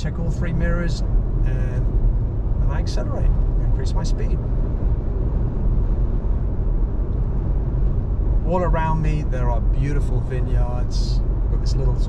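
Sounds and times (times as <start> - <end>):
engine and tyre rumble: 0.0 - 12.0.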